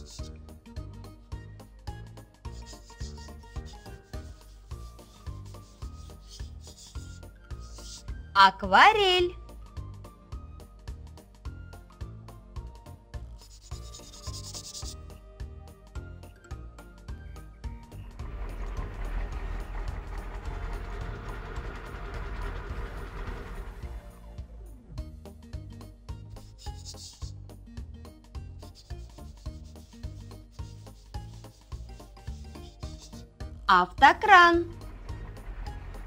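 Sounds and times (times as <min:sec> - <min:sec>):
paintbrush brushing paper: 0:00.0 - 0:00.3, 0:02.5 - 0:08.1, 0:13.4 - 0:15.1, 0:26.4 - 0:27.4, 0:28.6 - 0:33.3
light background music: 0:00.0 - 0:36.0
truck engine rumbling: 0:17.7 - 0:24.8, 0:34.2 - 0:36.0.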